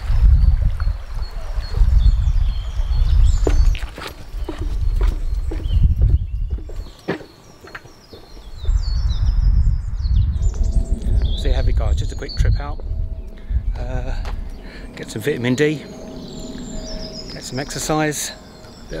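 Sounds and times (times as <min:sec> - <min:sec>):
wind rumble on microphone: 0:00.0 - 0:07.0, 0:08.2 - 0:19.0
songbirds chirping: 0:00.1 - 0:19.0
footsteps on paved path: 0:03.2 - 0:08.9, 0:14.1 - 0:14.6.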